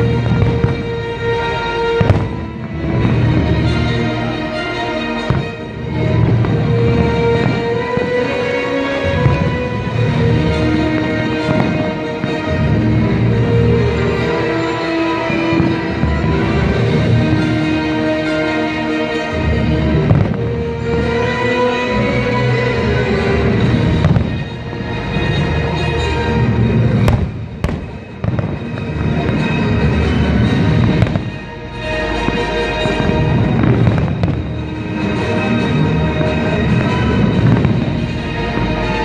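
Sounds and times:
fireworks booming and cracking: 0:00.0 - 0:39.0
music playing: 0:00.0 - 0:39.0.

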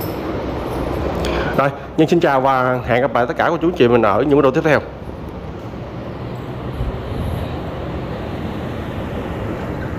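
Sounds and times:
street ambience rushing noise: 0:00.0 - 0:09.9.

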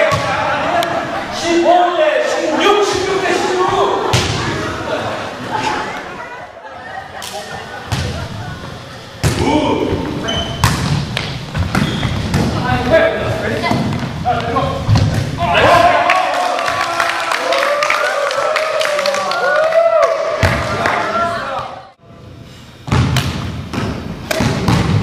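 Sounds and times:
people talking: 0:00.0 - 0:10.5, 0:12.4 - 0:17.2
volleyball being struck: 0:10.6 - 0:12.6.

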